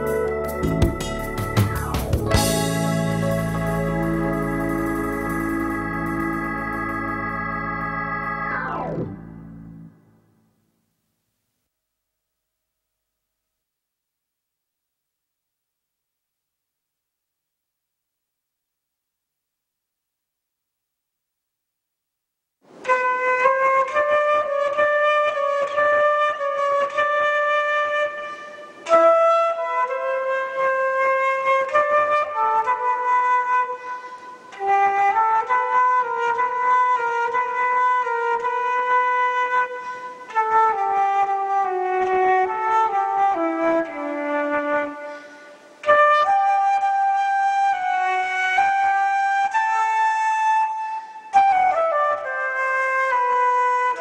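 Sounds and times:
flute playing slow melody: 0.0 - 9.9, 22.7 - 54.0
player breathing: 45.0 - 45.8.

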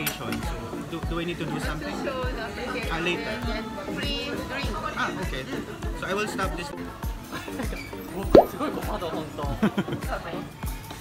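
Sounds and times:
background music with steady beat: 0.3 - 11.0
loud rising blip: 8.3 - 8.6.

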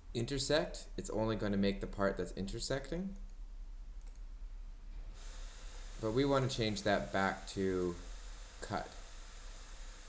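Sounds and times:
low electrical hum: 0.0 - 10.0
computer mouse clicks: 4.0 - 4.3.

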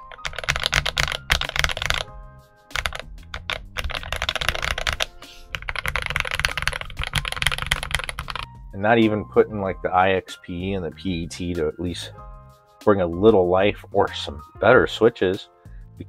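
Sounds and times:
fast mechanical keyboard typing: 0.0 - 2.1, 2.7 - 8.5.

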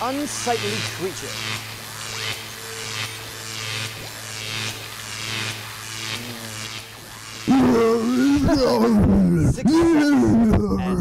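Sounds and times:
pulsing electric hum: 0.0 - 11.0.

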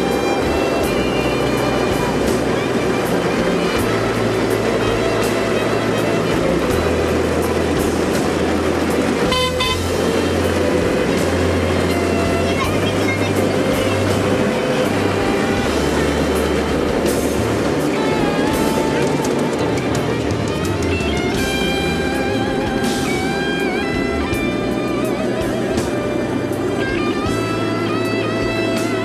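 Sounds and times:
background music: 0.0 - 29.0
train rolling noise: 0.0 - 29.0
miniature train horn toot: 9.2 - 16.2.

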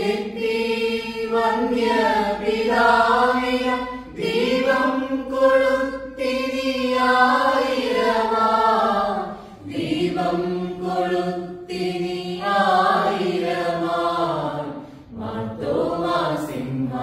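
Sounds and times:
mixed choir singing unaccompanied: 0.0 - 17.0.

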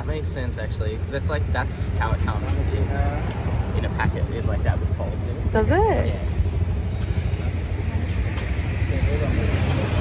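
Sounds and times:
street rumble: 0.0 - 10.0.

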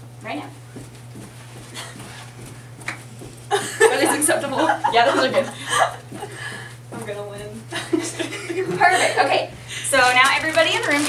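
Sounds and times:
jumping jack movement strokes: 0.0 - 11.0.

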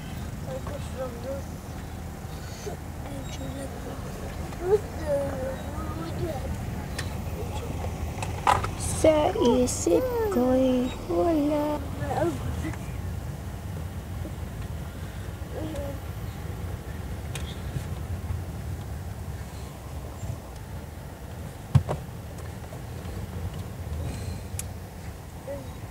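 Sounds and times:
car engine and tyres rumbling: 0.0 - 25.9.

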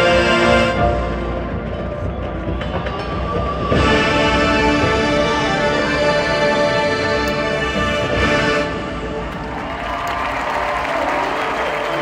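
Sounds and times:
marching band sustained chord: 0.0 - 12.0.

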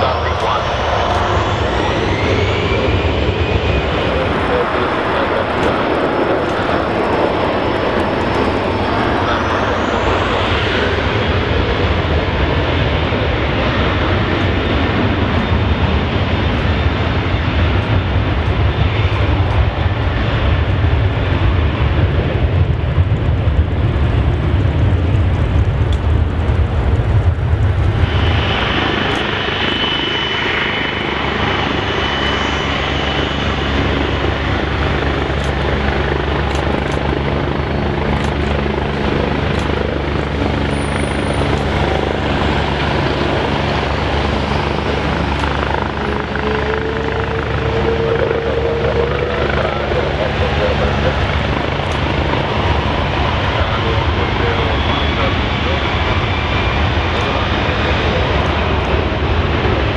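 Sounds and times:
jet engines roaring: 0.0 - 59.9
low hum: 0.0 - 59.9.

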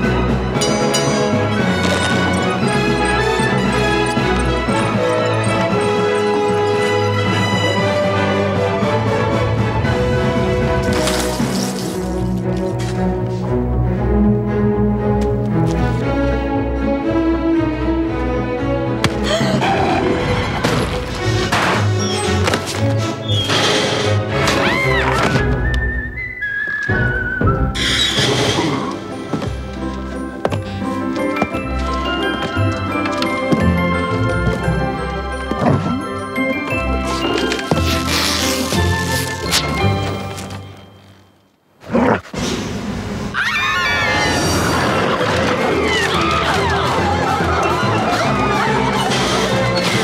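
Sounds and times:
orchestral score: 0.0 - 41.0, 42.4 - 50.0
snarling cries: 43.4 - 50.0.

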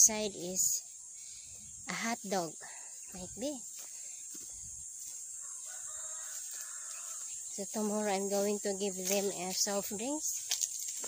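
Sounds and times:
rooster crowing: 5.4 - 7.4.

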